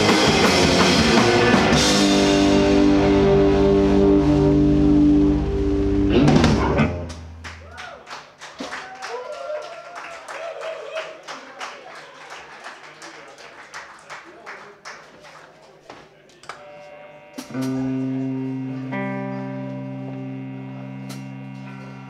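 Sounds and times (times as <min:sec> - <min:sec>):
live rock band playing: 0:00.0 - 0:07.6, 0:16.6 - 0:22.0
drum crash: 0:06.1 - 0:07.4
audience clapping: 0:07.1 - 0:16.7.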